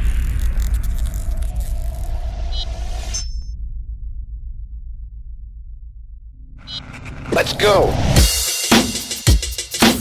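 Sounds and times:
deep rumble: 0:00.0 - 0:08.2.

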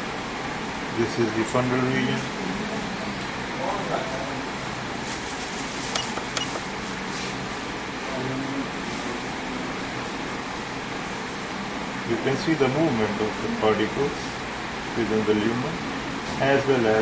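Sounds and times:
low hum with hiss: 0:00.0 - 0:17.0.

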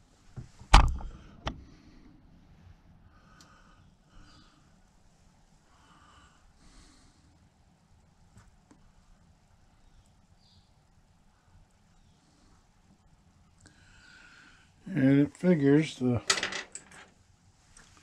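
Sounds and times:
slow nasal breathing: 0:13.6 - 0:14.8.

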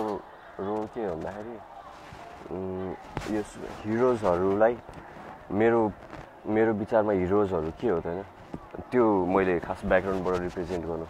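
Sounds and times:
man talking: 0:00.0 - 0:01.6, 0:02.5 - 0:04.9, 0:05.5 - 0:11.0.

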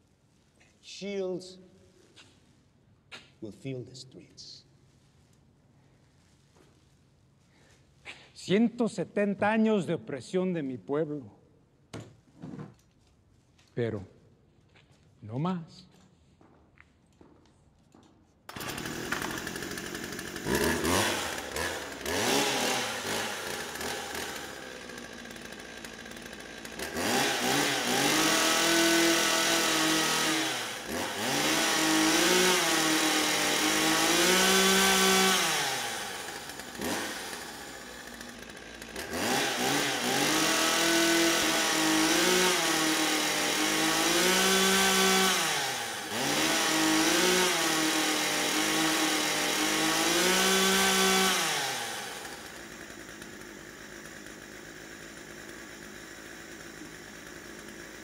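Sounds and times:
chainsaw engine revving: 0:18.5 - 0:58.0.

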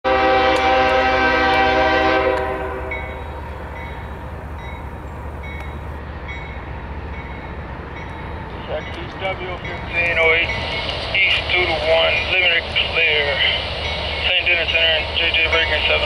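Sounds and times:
locomotive air horn: 0:00.0 - 0:03.4
train rumble: 0:00.1 - 0:16.0.

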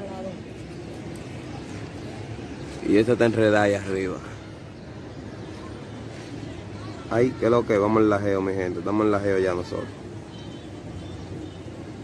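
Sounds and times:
man speaking: 0:02.8 - 0:04.5.

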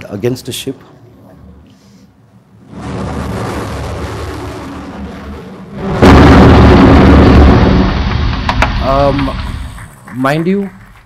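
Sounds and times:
missile rushing through air: 0:02.6 - 0:09.9
explosion with heavy rumble: 0:02.6 - 0:10.1.

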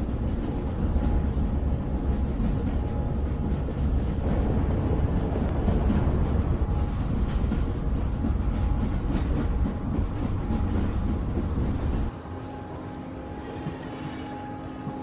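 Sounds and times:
low rumbling noise: 0:00.8 - 0:15.0.

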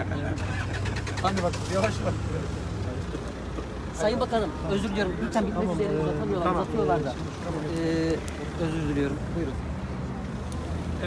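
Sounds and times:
car engine idling: 0:00.0 - 0:05.2.

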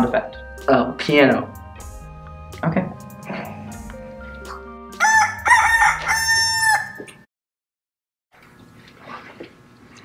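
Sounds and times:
quiet background music: 0:00.0 - 0:07.0
rooster crowing: 0:05.0 - 0:07.2.

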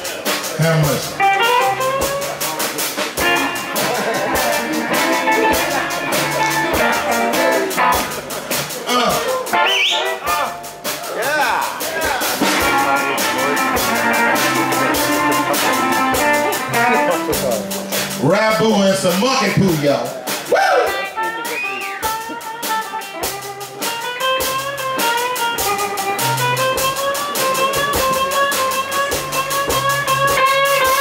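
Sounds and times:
drum kit beat: 0:00.0 - 0:31.0
electric guitar: 0:00.0 - 0:31.0.

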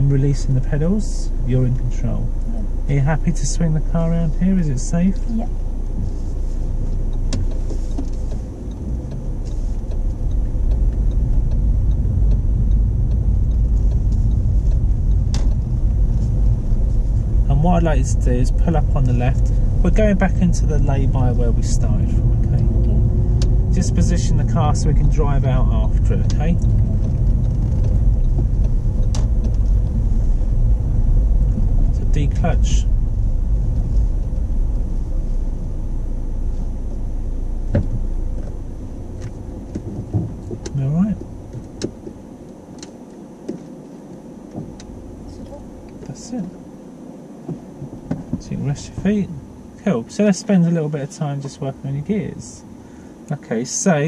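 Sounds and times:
car engine and road rumble: 0:00.0 - 0:54.0.

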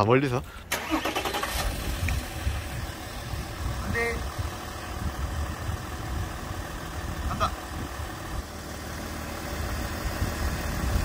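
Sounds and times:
car engine idling: 0:00.3 - 0:11.0.

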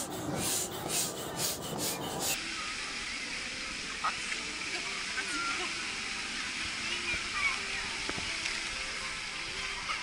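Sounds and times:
air pump hissing strokes: 0:00.0 - 0:02.4
outdoor background noise: 0:00.0 - 0:10.0.

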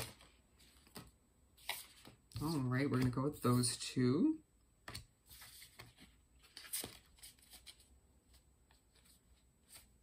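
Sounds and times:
cards rustling and tapping: 0:04.8 - 0:10.0.

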